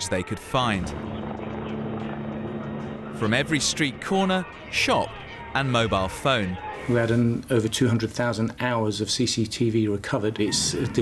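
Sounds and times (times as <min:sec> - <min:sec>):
helicopter engine and rotor drone: 0:00.3 - 0:05.6.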